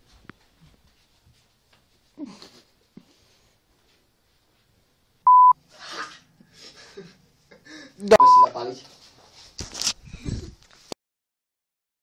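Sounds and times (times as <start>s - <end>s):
loud electronic beep: 5.3s - 5.6s, 8.2s - 8.5s.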